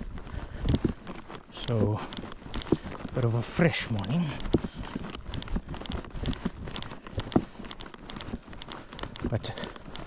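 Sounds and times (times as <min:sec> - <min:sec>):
crunching footsteps outdoors: 0:00.0 - 0:10.0.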